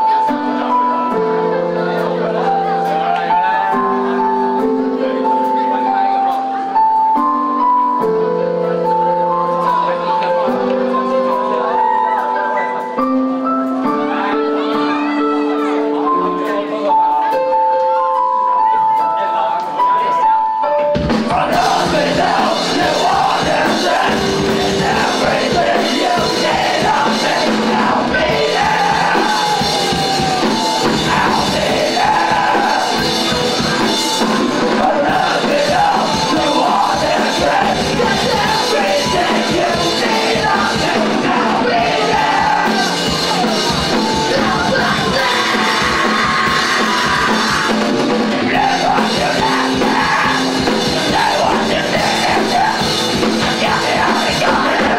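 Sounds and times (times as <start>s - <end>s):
rock band playing: 0.0s - 54.9s
drum kit: 20.9s - 54.9s
person singing into microphone: 21.3s - 54.9s.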